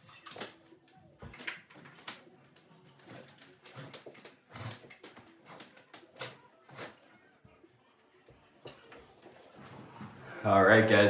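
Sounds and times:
wire rustling and scraping: 1.4s - 7.3s, 8.3s - 10.4s.

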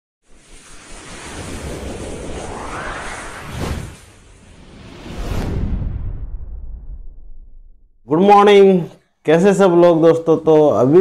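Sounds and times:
whoosh with low rumble: 0.2s - 8.1s.

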